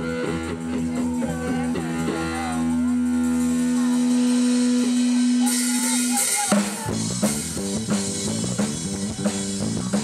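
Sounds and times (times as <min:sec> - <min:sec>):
low bass: 0:00.0 - 0:06.2, 0:06.8 - 0:10.0.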